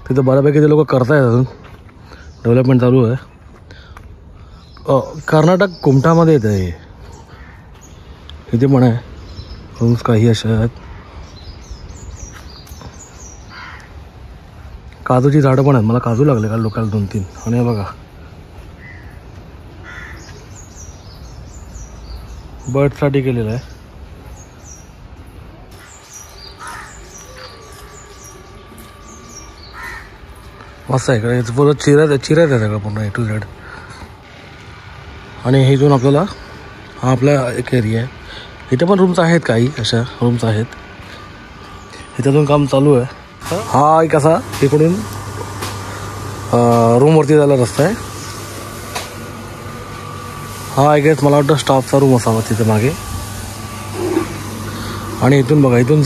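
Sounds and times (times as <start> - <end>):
high bird calls: 0.0 - 25.0, 25.6 - 56.0
harsh low bird call: 10.7 - 14.0, 18.8 - 22.4, 25.7 - 31.0.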